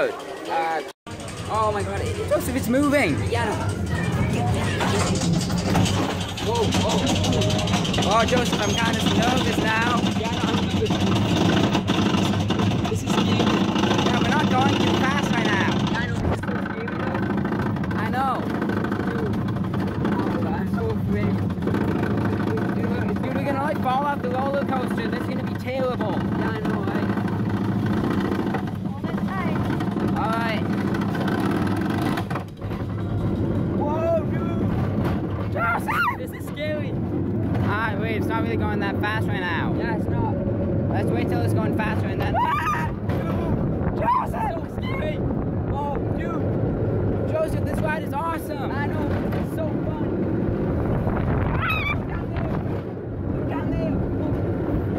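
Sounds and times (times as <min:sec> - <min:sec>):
riders' voices: 0:00.0 - 0:31.9, 0:33.7 - 0:50.4
roller coaster rumbling on track: 0:00.0 - 0:54.9
riders screaming: 0:35.5 - 0:36.3, 0:42.2 - 0:43.1, 0:43.9 - 0:45.0, 0:51.4 - 0:52.4.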